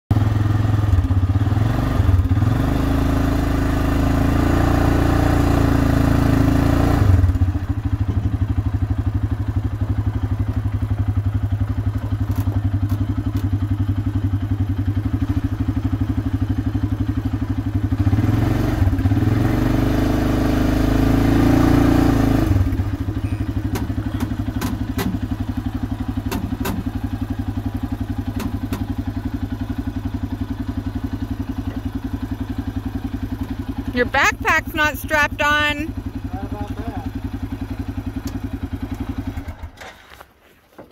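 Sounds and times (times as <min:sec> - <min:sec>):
atv engine revving: 0:00.1 - 0:39.9.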